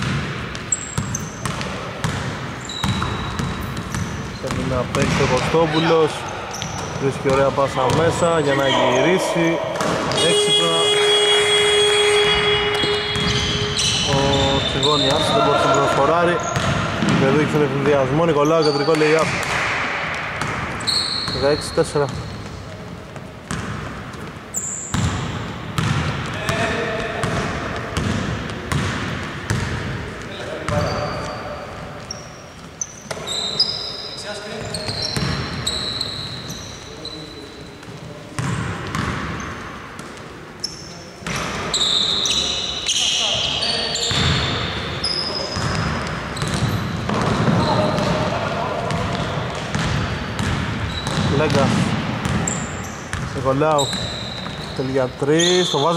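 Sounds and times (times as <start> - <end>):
ball bouncing on wooden floor: 0.0 - 5.5, 9.7 - 10.3, 12.2 - 14.4, 15.9 - 18.0, 22.1 - 30.9, 45.6 - 48.2, 48.9 - 52.5
sneaker squeaks: 0.0 - 55.9
players calling out: 4.0 - 19.9.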